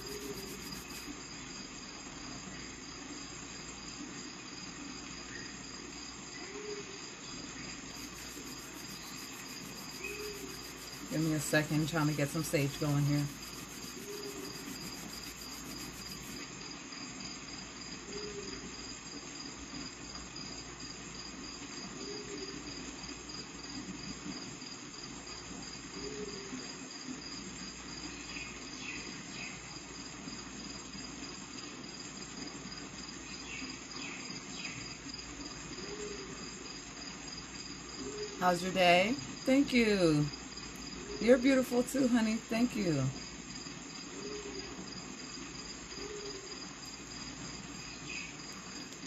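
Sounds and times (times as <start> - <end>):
low background hiss: 0.0 - 17.0, 17.8 - 49.0
crickets chirping: 0.0 - 49.0.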